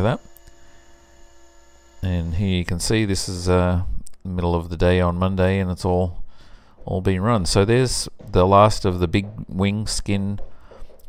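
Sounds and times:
faint mains hum: 0.0s - 11.0s.

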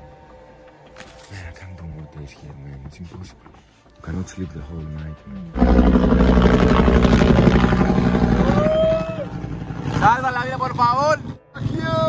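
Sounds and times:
helicopter rotor chop: 5.6s - 12.0s
person shouting: 8.4s - 9.3s.

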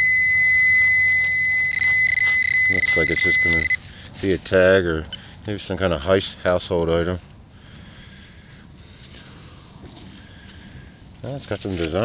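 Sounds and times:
pinpointer high-pitched tone: 0.0s - 3.8s.

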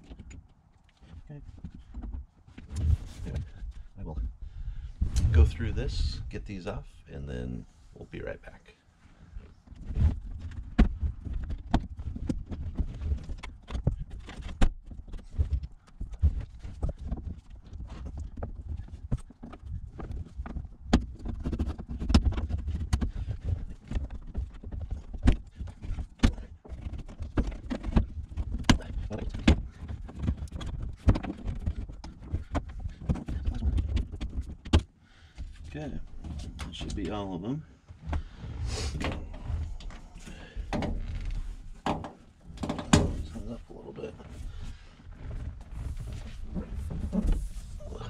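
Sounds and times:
clicks knocks and rattles of panel: 41.8s - 43.3s.

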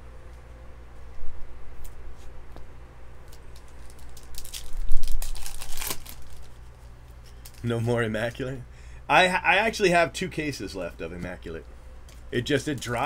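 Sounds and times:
foil wrapper crinkling: 3.3s - 7.8s.

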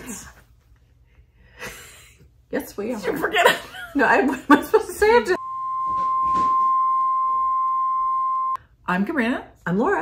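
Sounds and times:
pure test tone: 5.4s - 8.6s.

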